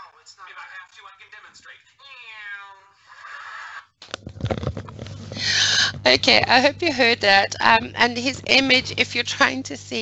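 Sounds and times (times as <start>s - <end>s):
microphone handling knocks: 4.0s - 6.7s.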